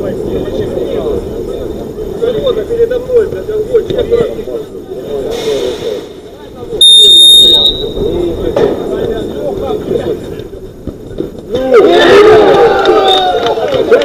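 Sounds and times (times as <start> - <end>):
sports whistle blast: 6.8 - 8.1
players shouting: 11.5 - 14.0.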